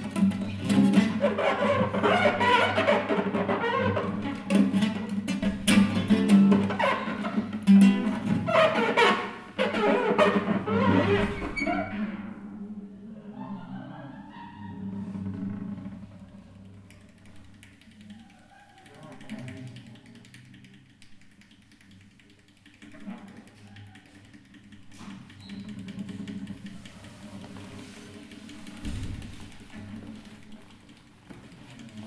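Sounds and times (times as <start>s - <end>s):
classical guitar creaking tones: 0.0s - 12.6s, 14.6s - 18.2s, 23.0s - 32.0s
fine scratching ticks: 16.1s - 32.0s.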